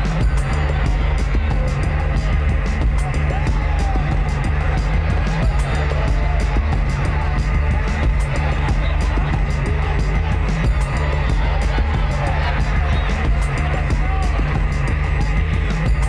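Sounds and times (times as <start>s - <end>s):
loud bass-heavy music: 0.0s - 16.0s.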